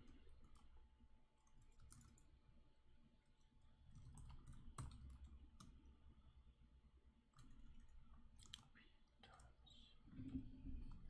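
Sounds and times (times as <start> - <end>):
computer keyboard keystrokes: 1.4 - 2.3, 3.9 - 5.7, 7.4 - 8.7.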